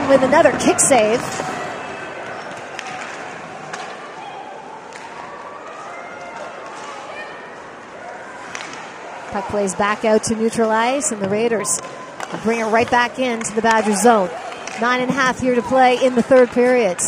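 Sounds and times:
crowd murmur: 0:00.0 - 0:17.0
hockey stick and puck clicks: 0:02.2 - 0:04.0, 0:08.4 - 0:09.4, 0:14.5 - 0:15.4.

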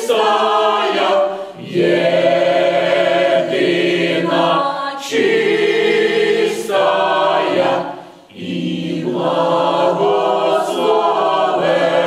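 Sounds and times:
mixed choir singing in harmony: 0:00.0 - 0:12.0.

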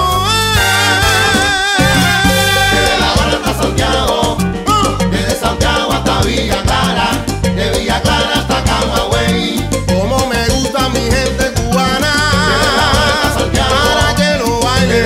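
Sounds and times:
salsa band music: 0:00.0 - 0:15.0.

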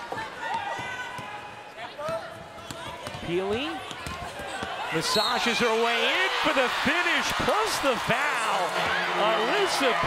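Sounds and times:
arena crowd noise: 0:00.0 - 0:10.0
basketball bouncing on hardwood: 0:02.0 - 0:04.8.

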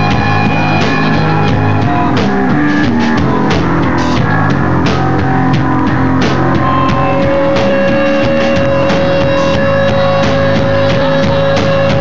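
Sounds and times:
distorted electric guitar and bass: 0:00.0 - 0:12.0
drum kit pounding: 0:00.0 - 0:12.0.

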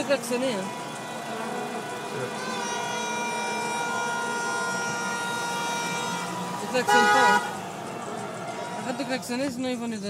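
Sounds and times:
car horn long blast: 0:00.0 - 0:09.0.

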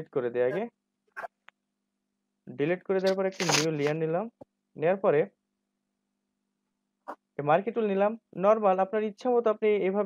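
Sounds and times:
man talking: 0:00.0 - 0:00.7, 0:02.5 - 0:05.2.

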